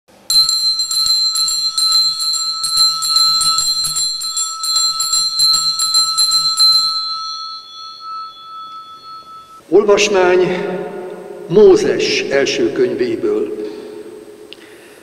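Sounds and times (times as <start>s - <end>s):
altar bells jingling: 0.1s - 9.7s.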